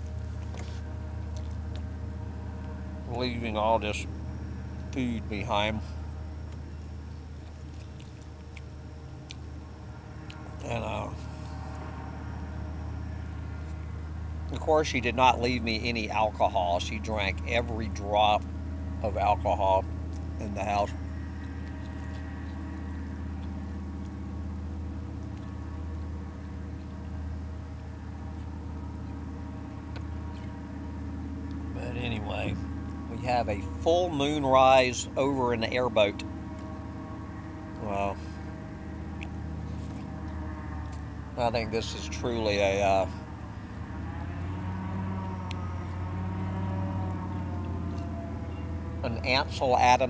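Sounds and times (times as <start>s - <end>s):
distant airboat engine droning: 0.0s - 50.0s.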